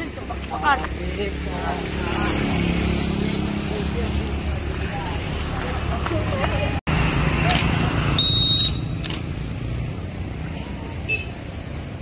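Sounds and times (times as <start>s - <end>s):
boys chattering: 0.0s - 6.8s.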